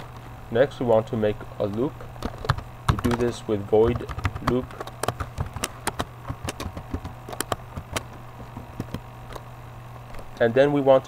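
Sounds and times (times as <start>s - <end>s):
steady low hum: 0.0s - 11.0s
computer keyboard typing: 1.6s - 9.4s.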